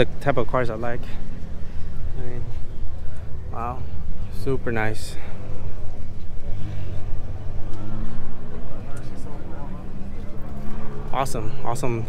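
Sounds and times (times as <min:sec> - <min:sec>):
car engine idling: 0:00.0 - 0:12.0
distant people talking: 0:00.0 - 0:12.0.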